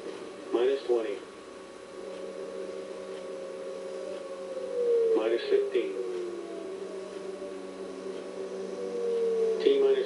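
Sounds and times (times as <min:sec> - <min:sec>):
electrical hum: 0:00.0 - 0:10.0
tone sliding down in pitch: 0:01.9 - 0:10.0
man speaking: 0:05.2 - 0:06.1, 0:09.6 - 0:10.0.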